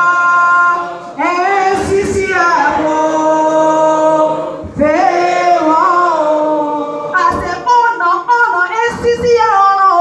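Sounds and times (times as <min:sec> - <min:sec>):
crowd singing and calling out: 0:00.0 - 0:10.0.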